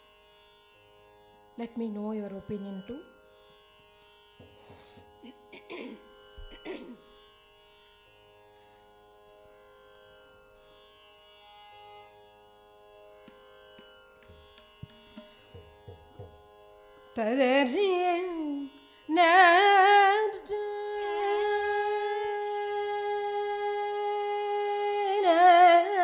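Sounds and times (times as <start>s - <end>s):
tanpura drone: 0.0s - 26.0s
soft low taps: 13.8s - 16.4s.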